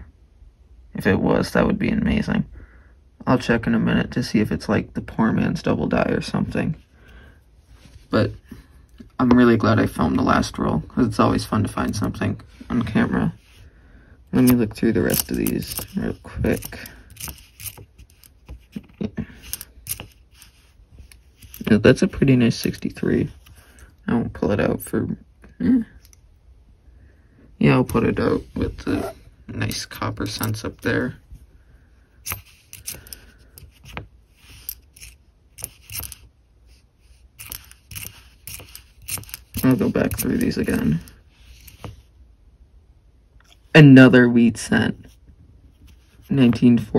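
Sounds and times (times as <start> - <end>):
coins clicking together: 14.4 - 18.4, 19.4 - 20.5, 32.2 - 33.8, 34.5 - 36.2, 37.4 - 41.9.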